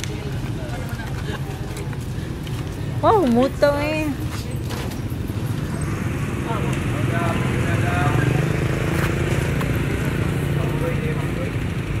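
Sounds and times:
people talking: 0:00.0 - 0:05.0, 0:05.6 - 0:12.0
vehicle engine idling: 0:00.0 - 0:12.0.

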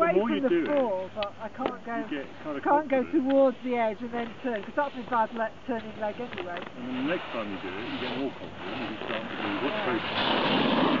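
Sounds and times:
snowboard edge scraping snow: 0:04.2 - 0:11.0.

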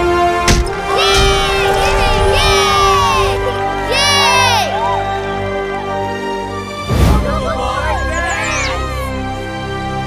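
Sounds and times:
background music with held notes: 0:00.0 - 0:10.0
children shouting and cheering: 0:00.8 - 0:06.2.

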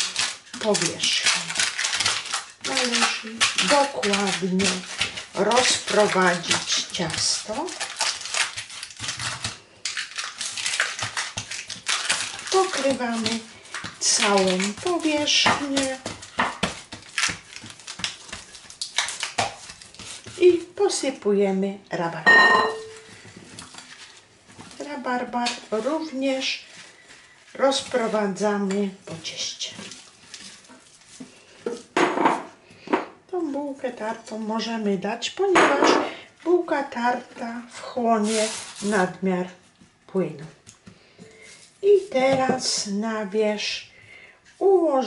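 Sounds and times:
fingers pressing crumbly dough: 0:00.0 - 0:20.7
glass bowl knocking and scraping: 0:22.3 - 0:23.0.

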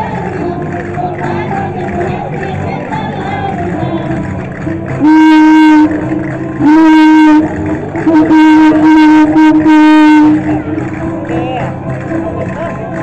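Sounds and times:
loud horn blasts: 0:04.9 - 0:10.8.

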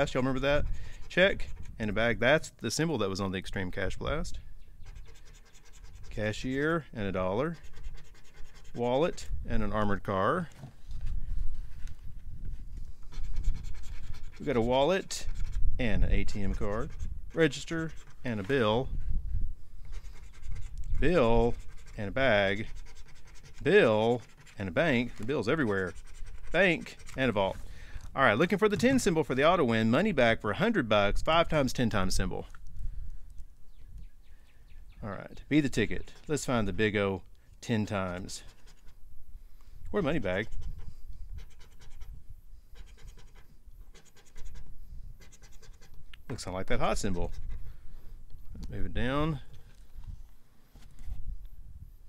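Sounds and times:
coin scratching a ticket: 0:00.2 - 0:02.0, 0:04.8 - 0:09.2, 0:13.0 - 0:18.9, 0:19.8 - 0:27.4, 0:37.8 - 0:39.0, 0:40.2 - 0:46.0, 0:46.8 - 0:47.6.

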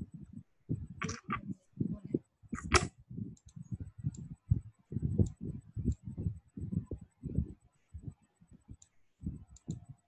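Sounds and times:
muffled low voice murmuring: 0:00.9 - 0:02.8.

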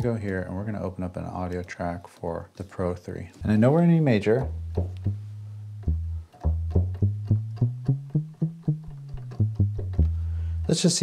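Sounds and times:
plucky synth bass line: 0:03.4 - 0:10.8.

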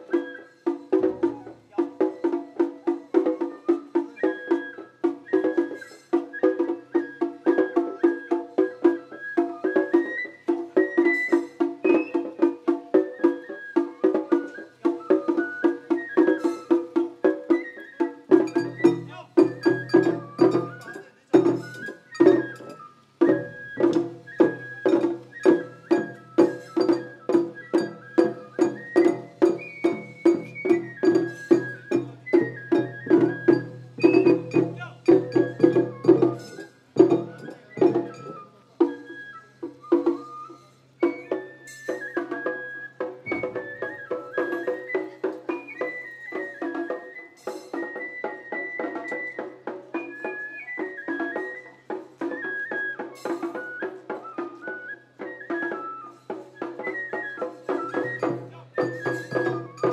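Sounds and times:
bamboo flute melody: 0:00.0 - 0:59.9
taiko drums: 0:00.0 - 0:59.9.

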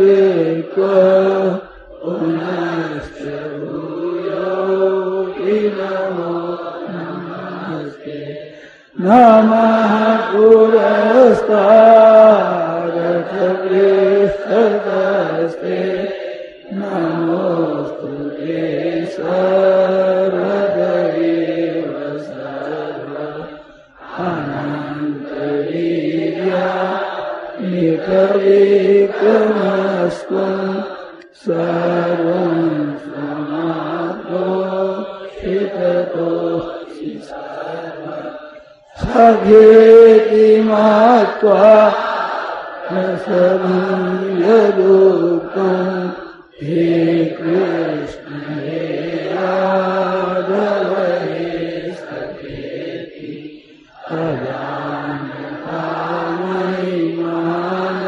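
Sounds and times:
person chanting prayer: 0:00.0 - 0:58.0.

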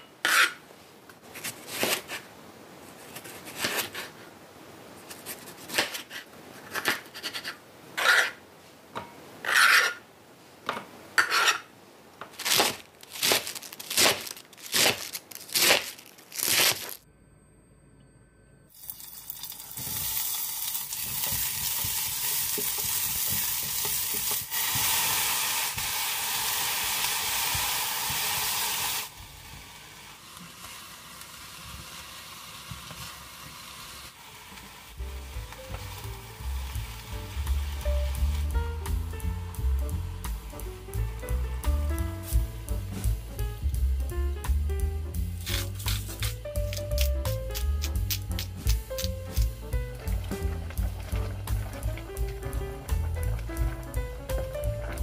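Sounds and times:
vegetables sizzling in a pot: 0:18.7 - 0:41.5, 0:45.1 - 0:55.0
background music: 0:35.0 - 0:55.0.

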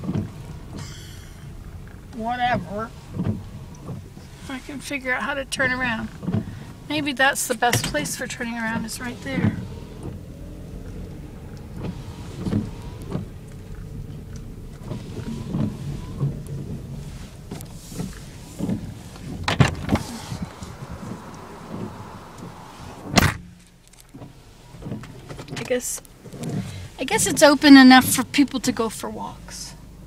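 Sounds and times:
car engine and road hum: 0:00.0 - 0:30.0
knocks and thumps: 0:17.5 - 0:22.0.

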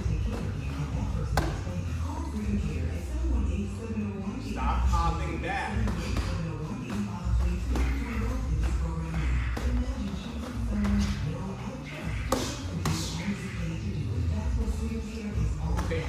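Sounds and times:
music playing: 0:00.0 - 0:16.0.

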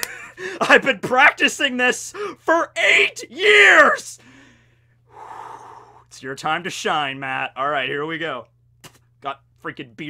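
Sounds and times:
man shouting: 0:01.4 - 0:04.2.

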